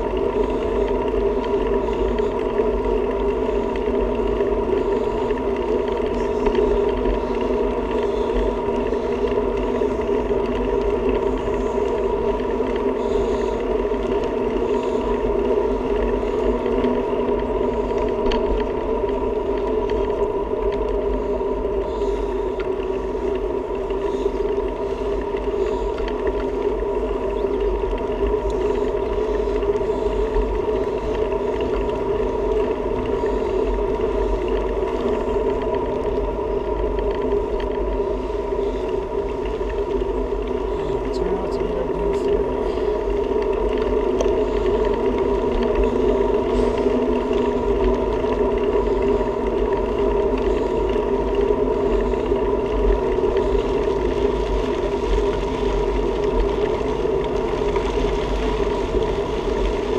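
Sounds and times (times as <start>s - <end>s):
bicycle wind and road rumble: 0.0s - 59.9s
droning hum: 0.0s - 59.9s.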